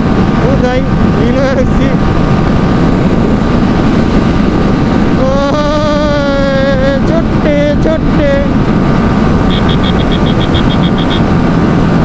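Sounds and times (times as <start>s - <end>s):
motorcycle engine at speed: 0.0s - 12.0s
wind noise on microphone: 0.0s - 12.0s.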